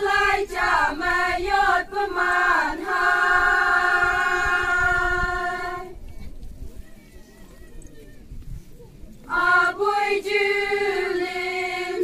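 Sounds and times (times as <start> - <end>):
women singing in unison: 0.0 - 6.0, 9.3 - 12.0
faint low background noise: 0.0 - 12.0.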